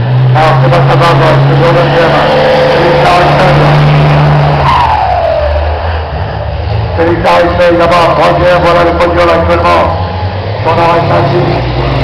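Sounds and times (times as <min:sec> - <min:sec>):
truck engine running loud: 0:00.0 - 0:12.0.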